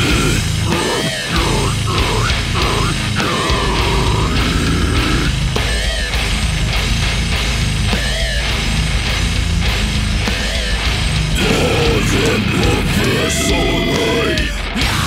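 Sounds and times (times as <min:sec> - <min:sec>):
death metal music: 0:00.0 - 0:15.0.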